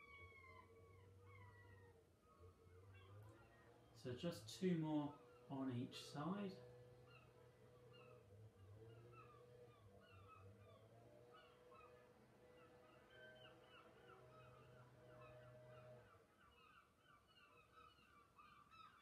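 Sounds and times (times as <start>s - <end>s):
bird chorus: 0.0s - 19.0s.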